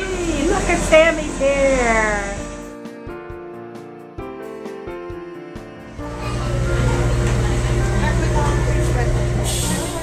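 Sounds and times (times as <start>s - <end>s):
low machine hum: 0.0s - 2.7s, 6.0s - 10.0s
people's voices: 6.0s - 10.0s.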